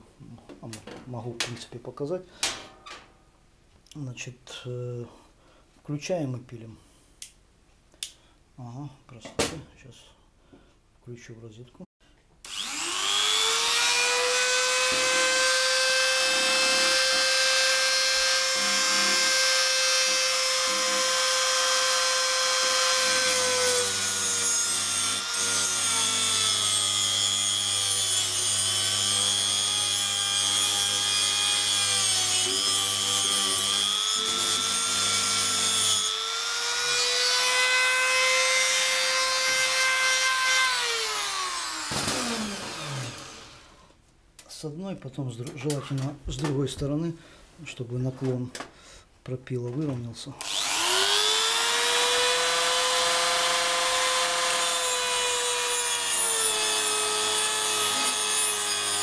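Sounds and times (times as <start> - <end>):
rotary tool cutting metal: 12.5 - 43.7, 50.4 - 59.0.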